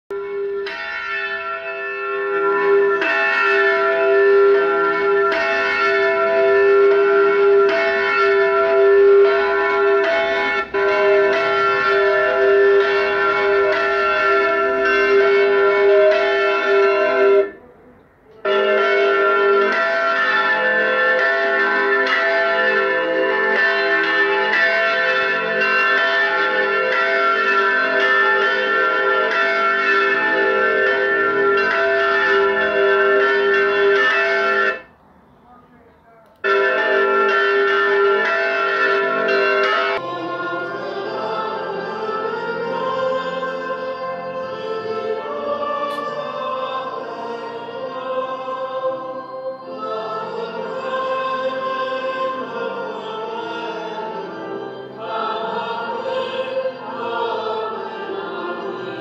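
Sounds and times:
church bells pealing: 0.1 - 35.7, 36.4 - 59.0.

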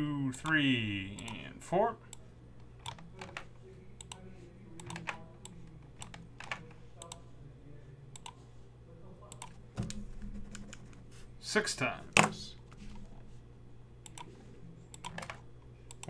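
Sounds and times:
faint low hum: 0.0 - 16.0
computer keyboard typing: 2.8 - 4.2, 4.8 - 7.2, 14.0 - 16.0.

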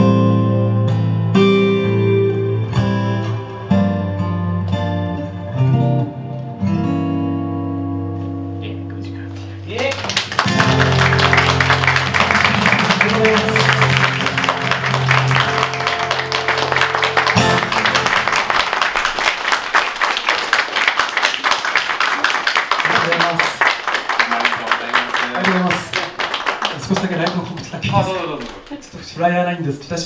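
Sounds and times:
audience applauding: 9.7 - 29.0
acoustic guitar chord: 10.5 - 18.6.

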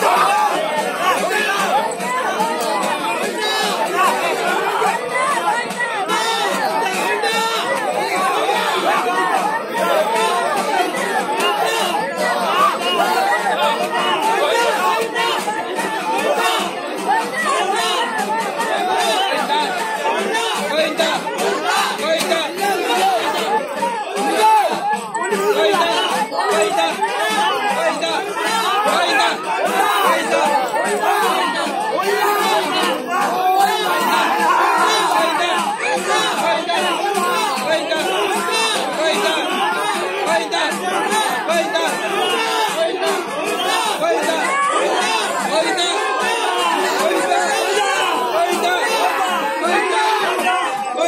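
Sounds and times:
crowd babble: 0.0 - 51.0.

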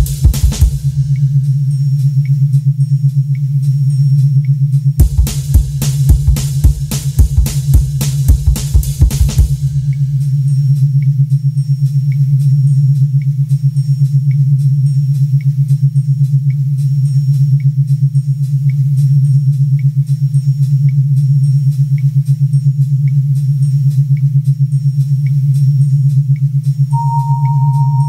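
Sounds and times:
pulsing low synth drone: 27.0 - 28.0
short high synth blip: 27.0 - 28.0.

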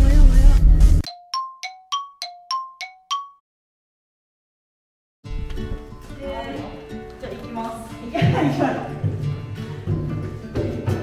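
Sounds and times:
bell-like chime jingle: 1.1 - 3.4.

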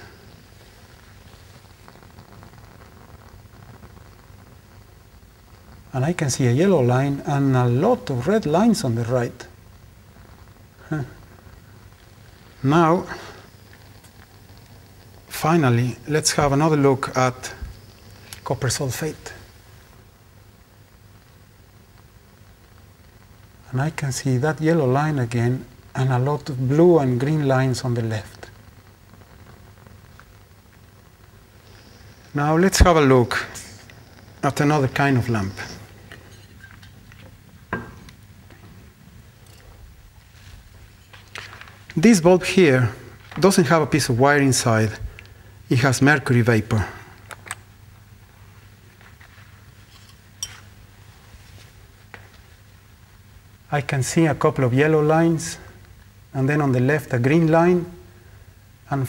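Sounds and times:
gas torch hissing: 0.0 - 59.0
low steady hum: 0.0 - 59.0.

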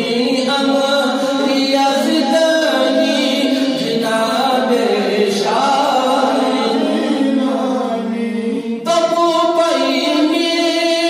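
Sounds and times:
man chanting devotional poem: 0.0 - 11.0.

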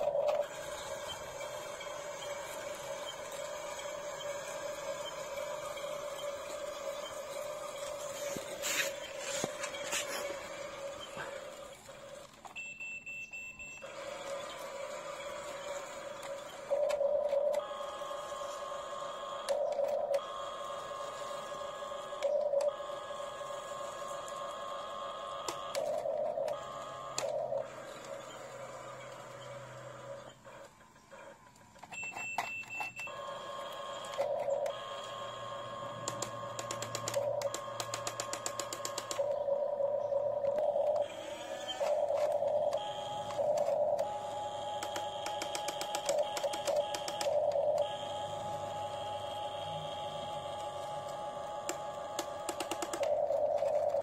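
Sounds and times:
toy excavator motors whining: 0.0 - 54.0.

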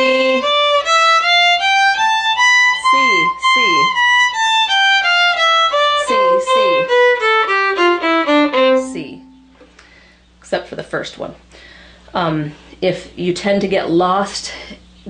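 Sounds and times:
violin playing a scale: 0.0 - 9.5
person calling out: 2.8 - 4.0, 6.0 - 7.2.

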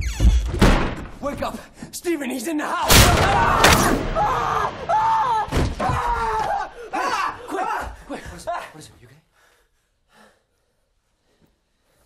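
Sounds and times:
man gasping softly: 9.3 - 10.9.

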